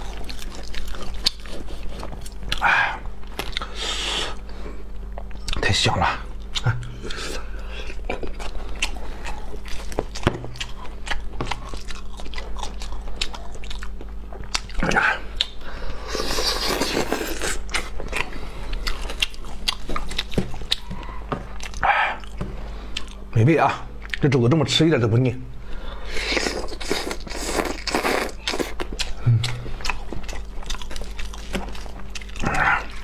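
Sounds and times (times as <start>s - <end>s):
close chewing with mouth smacks: 0.0s - 2.6s, 6.4s - 15.6s, 16.2s - 21.0s, 21.6s - 23.2s, 24.0s - 24.3s, 26.2s - 33.0s.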